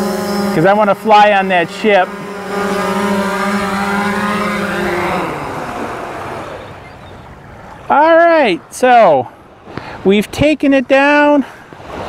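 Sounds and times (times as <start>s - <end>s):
drone motors humming: 0.0s - 8.0s.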